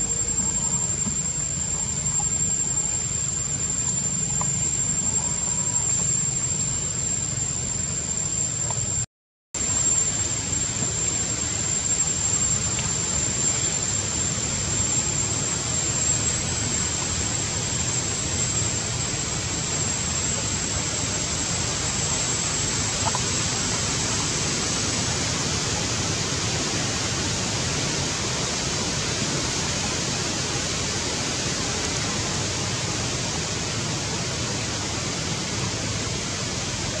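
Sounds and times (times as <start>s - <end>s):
rushing hiss-like outdoor noise: 0.0s - 9.0s, 9.6s - 37.0s
thin high-pitched whine: 0.0s - 37.0s.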